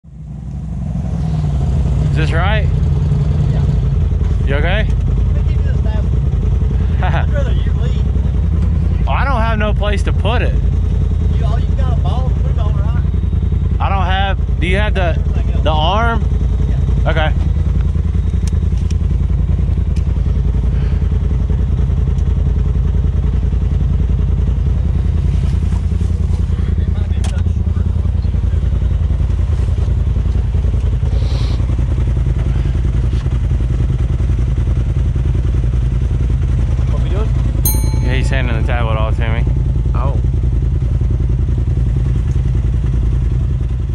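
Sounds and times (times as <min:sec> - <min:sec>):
vehicle engine low rumble: 0:00.0 - 0:43.9.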